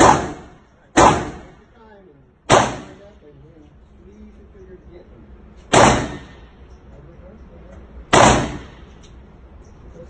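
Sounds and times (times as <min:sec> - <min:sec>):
handgun shots with reverberation: 0:00.0 - 0:01.6, 0:02.5 - 0:03.0, 0:05.7 - 0:06.5, 0:08.1 - 0:08.9.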